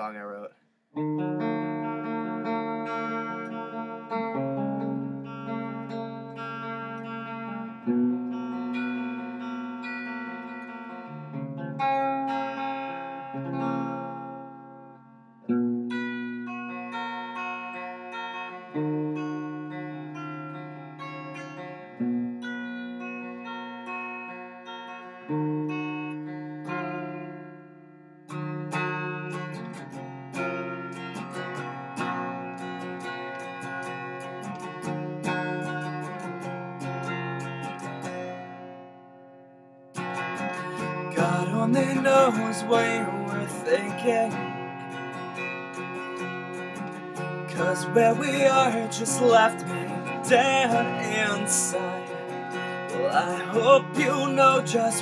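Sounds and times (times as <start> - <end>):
clean electric guitar chords: 1.0 - 55.0.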